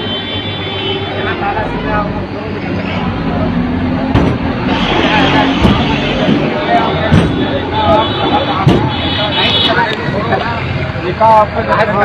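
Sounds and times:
crowd talking: 0.0s - 12.0s.

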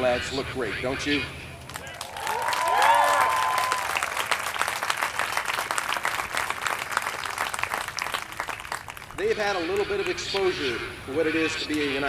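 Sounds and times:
audience applauding: 1.6s - 9.2s
cheering shouts: 1.8s - 4.4s.

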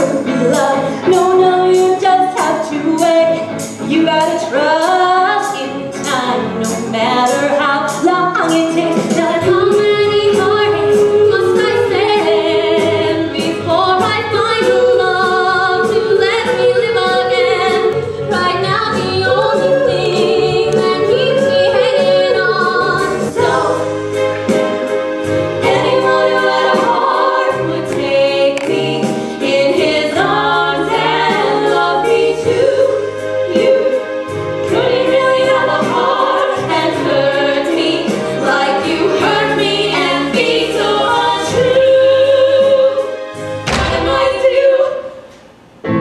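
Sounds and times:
voices singing in harmony: 0.0s - 45.4s
instrumental backing with steady beat: 0.0s - 46.0s.

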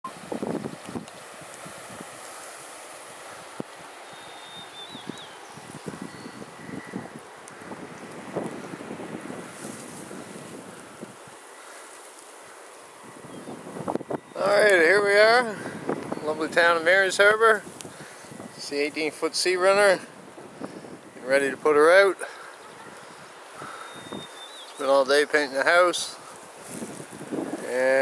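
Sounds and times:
wind on microphone: 0.1s - 2.3s, 3.1s - 11.4s, 13.0s - 21.8s, 22.5s - 24.4s, 26.1s - 28.0s
rustling: 0.3s - 14.9s, 22.4s - 28.0s
faint high chirp: 4.0s - 7.1s, 22.5s - 24.8s.

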